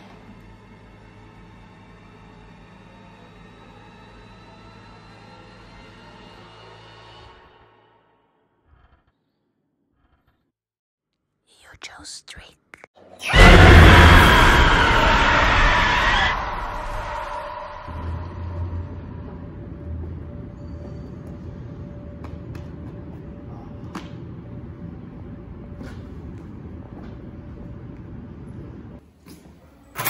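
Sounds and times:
person whispering: 0:11.4 - 0:13.0
steady low rumble: 0:16.8 - 0:29.0
faint constant hum: 0:18.4 - 0:29.0.

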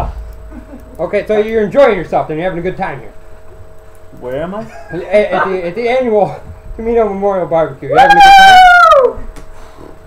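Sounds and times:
high-pitched howl: 0:07.9 - 0:09.2.

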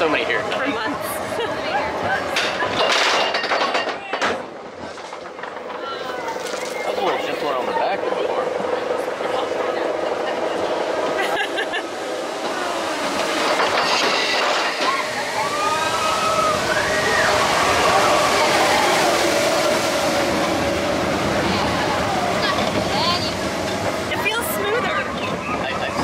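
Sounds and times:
roller coaster rumbling on track: 0:00.0 - 0:26.0
wavering high squeals: 0:12.2 - 0:23.4.

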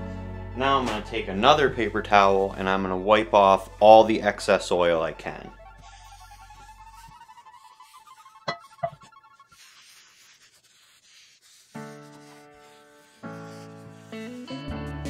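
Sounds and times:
paper towel rubbing on skillet: 0:01.7 - 0:14.8.

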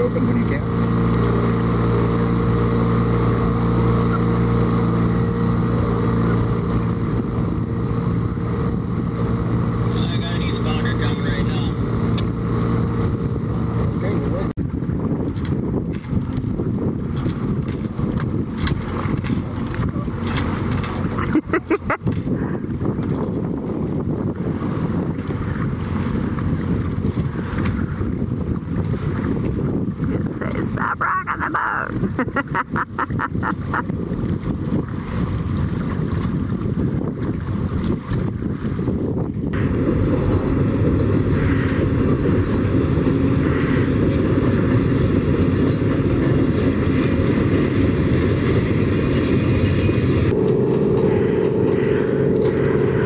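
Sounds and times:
boat motor humming: 0:00.0 - 0:53.0
water noise: 0:00.0 - 0:53.0
wind on microphone: 0:00.0 - 0:53.0.

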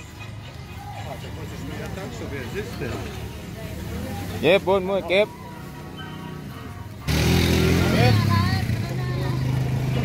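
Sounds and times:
people talking: 0:00.6 - 0:10.0.

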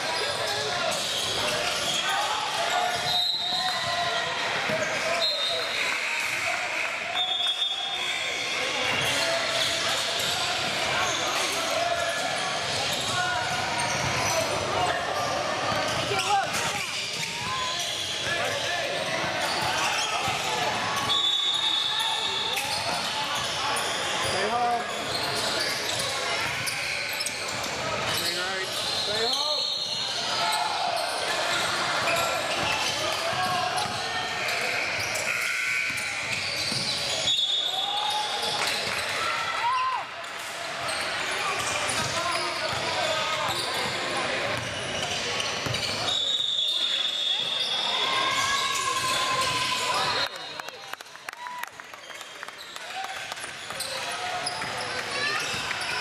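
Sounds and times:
sneaker squeaks: 0:00.0 - 0:50.8, 0:52.0 - 0:56.0.

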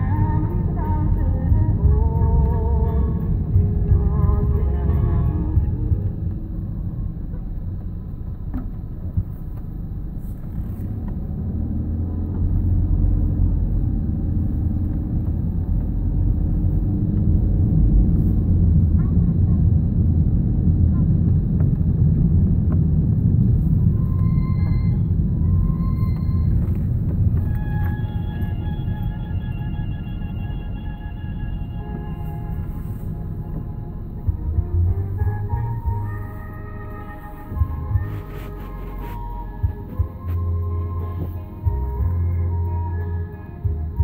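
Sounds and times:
car engine and tyres rumbling: 0:00.0 - 0:44.0
music with held tones: 0:25.5 - 0:44.0.

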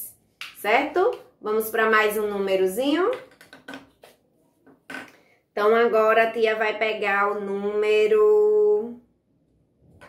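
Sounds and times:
woman speaking: 0:00.0 - 0:03.3, 0:05.6 - 0:09.0.

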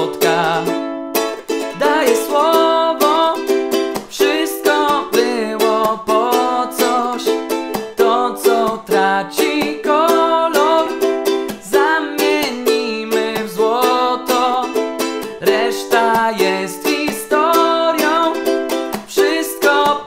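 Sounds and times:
man singing: 0:00.0 - 0:00.9, 0:01.6 - 0:20.0
ukulele strumming: 0:00.0 - 0:20.0.

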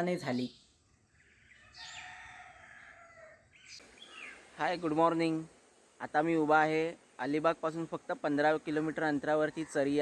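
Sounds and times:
birds chirping: 0:00.0 - 0:10.0
rooster crowing: 0:01.6 - 0:03.5.

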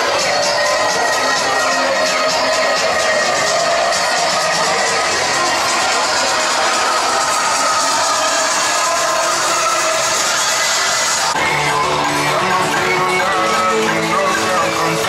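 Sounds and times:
crowd noise: 0:00.0 - 0:15.0
loud music: 0:00.0 - 0:15.0.

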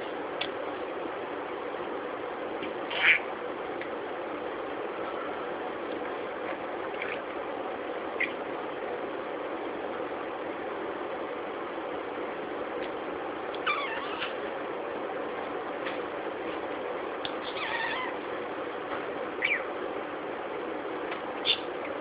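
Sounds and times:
budgerigar chirping: 0:02.9 - 0:03.3, 0:19.4 - 0:19.7, 0:21.4 - 0:21.7.

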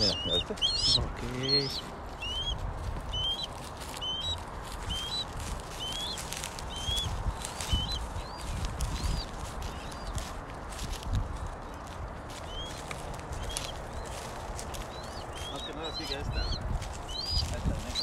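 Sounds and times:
bird chirping: 0:00.0 - 0:10.4, 0:11.4 - 0:18.0
footsteps in dry stubble: 0:00.0 - 0:18.0
wind rumble on microphone: 0:00.0 - 0:18.0.

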